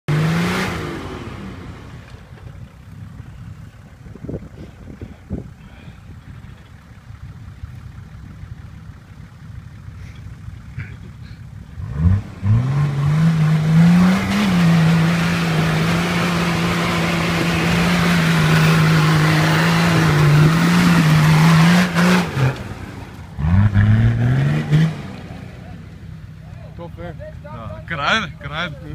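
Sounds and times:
diesel engine revving: 0.0s - 28.9s.

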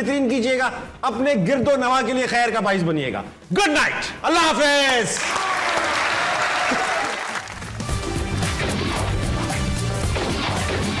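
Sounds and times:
theme music with deep bass: 7.5s - 11.0s.

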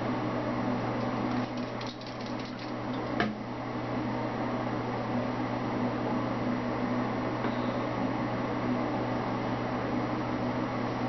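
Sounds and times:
mechanical hum with hiss: 0.0s - 11.0s.

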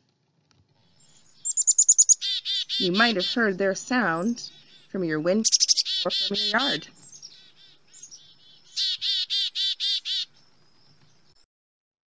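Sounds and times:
chickadee call: 1.4s - 10.3s.

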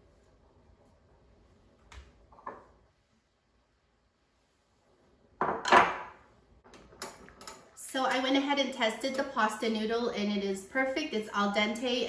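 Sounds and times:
cookware and utensils clattering: 6.8s - 8.4s.

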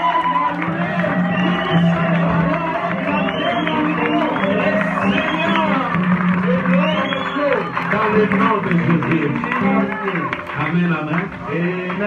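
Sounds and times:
congregation voices: 0.2s - 12.0s
man calling out on microphone: 4.2s - 12.0s.

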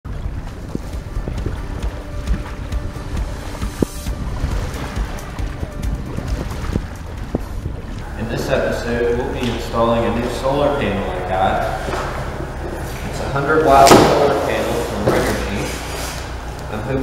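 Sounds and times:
wind buffeting microphone: 0.1s - 13.1s
background music: 0.1s - 17.0s
wash of water: 0.2s - 16.5s.

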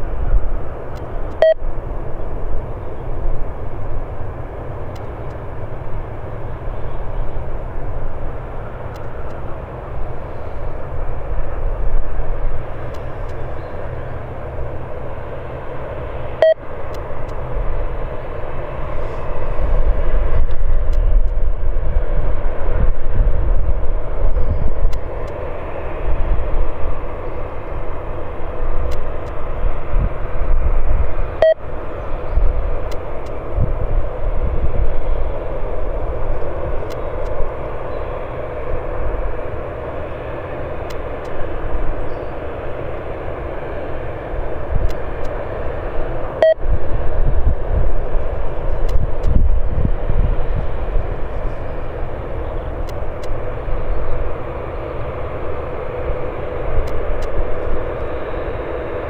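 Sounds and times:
jet engines rumbling: 0.0s - 59.0s.

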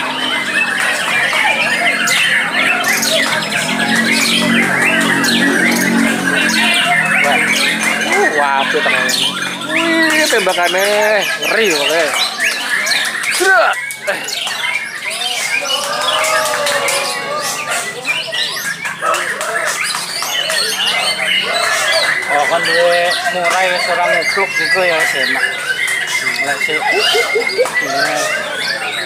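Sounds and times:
songbirds singing: 0.0s - 29.0s.

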